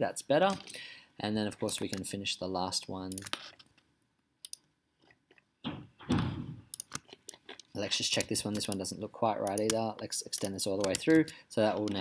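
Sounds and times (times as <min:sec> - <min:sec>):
computer mouse clicks: 0:04.4 - 0:04.7, 0:06.7 - 0:08.8, 0:09.4 - 0:12.0.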